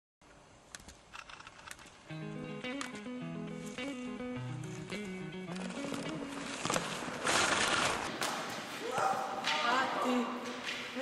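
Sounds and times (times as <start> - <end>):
background hiss: 0.2 - 11.0.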